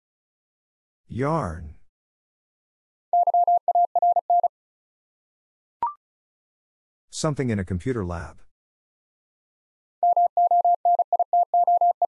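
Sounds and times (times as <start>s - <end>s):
morse code beeps: 3.2s - 4.5s, 10.0s - 12.0s.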